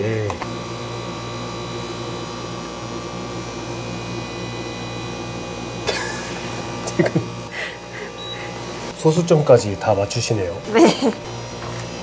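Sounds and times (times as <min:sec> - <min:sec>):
cafe equipment hum: 0:00.0 - 0:12.0.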